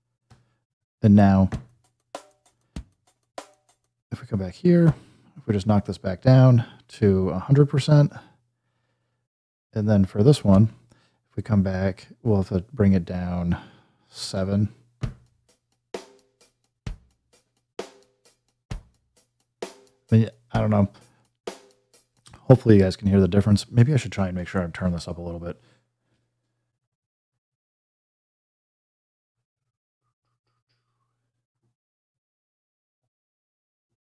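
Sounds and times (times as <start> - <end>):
sparse sampled drum beat: 1.1 - 4.0, 15.0 - 23.4.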